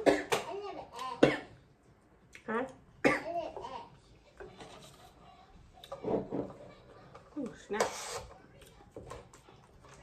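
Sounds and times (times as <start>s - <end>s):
woman coughing: 0.0s - 0.4s, 1.2s - 1.6s, 3.0s - 3.4s.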